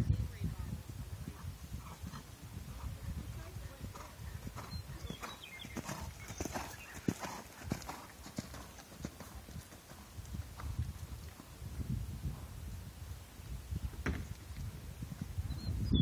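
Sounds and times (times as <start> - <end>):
horse hoofbeats in sand: 1.3 - 12.6.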